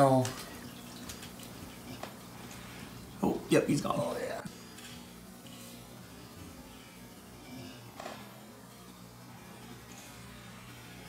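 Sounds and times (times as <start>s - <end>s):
aquarium air pump humming: 0.0s - 11.0s.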